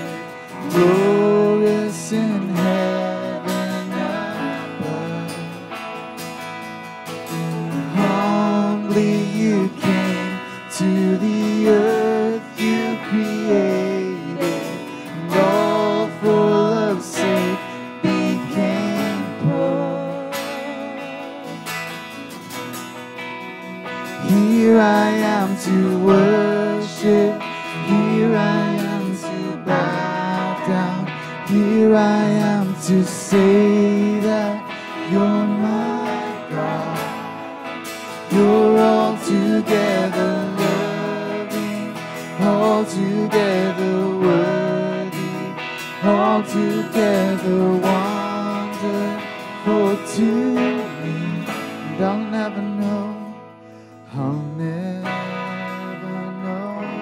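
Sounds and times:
electric guitar: 0.0 - 57.0
keyboard: 0.0 - 57.0
strummed acoustic guitar: 0.0 - 57.0.

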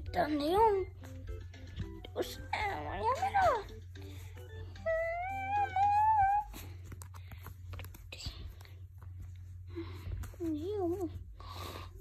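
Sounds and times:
faint background music: 0.0 - 12.0
steady low hum: 0.0 - 12.0.

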